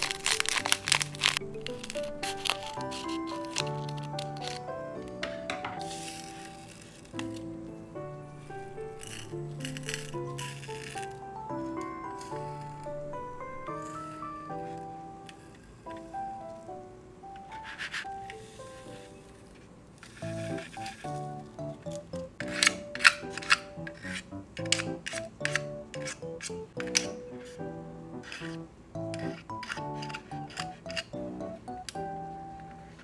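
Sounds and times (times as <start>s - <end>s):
plastic fork scraping plastic tray: 0.0s - 7.4s, 20.0s - 27.6s, 28.2s - 31.1s
plucked-string background music: 0.0s - 19.1s, 20.2s - 33.0s.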